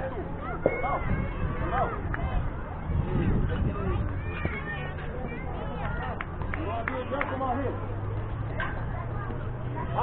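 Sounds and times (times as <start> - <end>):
steady low rumble: 0.0 - 6.2
children calling and chattering: 0.0 - 10.0.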